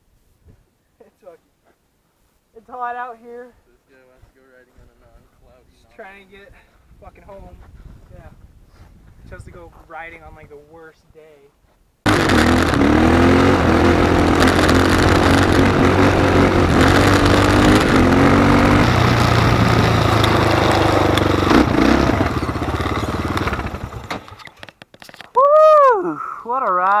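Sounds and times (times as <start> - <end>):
wind and road noise: 4.8 - 25.4
quad engine running: 12.1 - 24.7.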